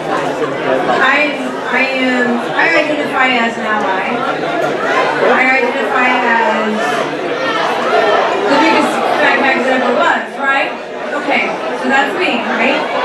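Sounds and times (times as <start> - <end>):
crowd chatter in echoing hall: 0.0 - 13.0
people talking: 0.0 - 13.0.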